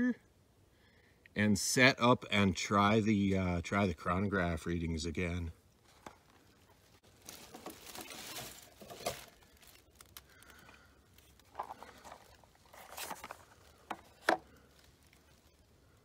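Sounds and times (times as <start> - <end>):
cardboard box rustling: 7.1 - 10.1, 11.2 - 15.0.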